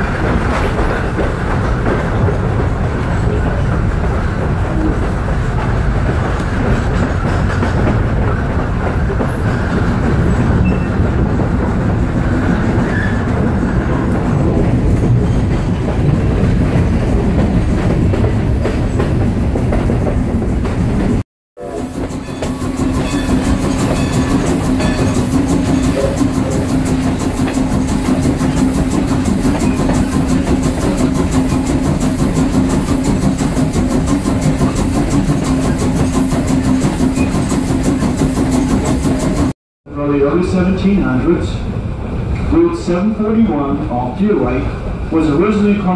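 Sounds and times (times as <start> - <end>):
train wheels rumbling on track: 0.0 - 45.9.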